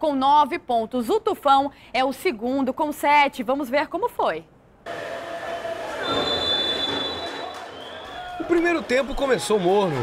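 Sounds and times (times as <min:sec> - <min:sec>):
stadium crowd noise: 0:04.9 - 0:10.0.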